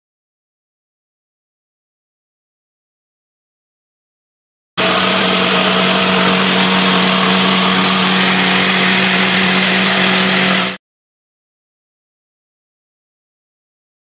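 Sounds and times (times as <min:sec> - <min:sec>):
jigsaw cutting: 0:04.8 - 0:10.8.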